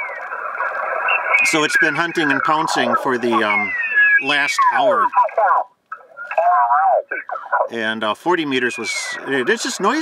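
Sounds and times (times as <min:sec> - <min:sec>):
radio speech through speaker: 0:00.6 - 0:10.0.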